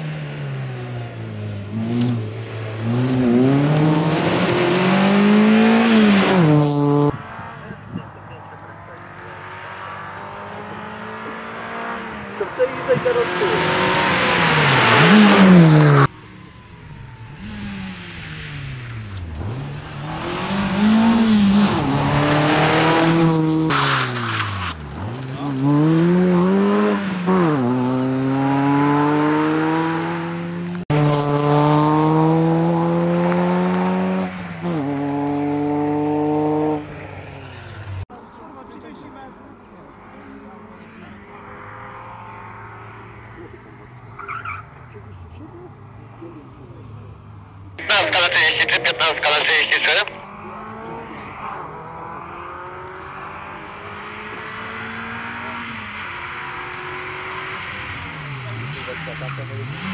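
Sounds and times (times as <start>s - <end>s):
rally car engine revving: 0.0s - 38.1s, 39.2s - 59.9s.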